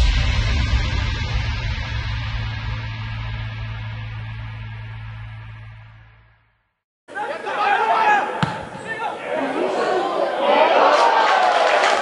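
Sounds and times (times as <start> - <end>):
logo sting music with low hum: 0.0 - 6.6
stadium crowd: 7.1 - 12.0.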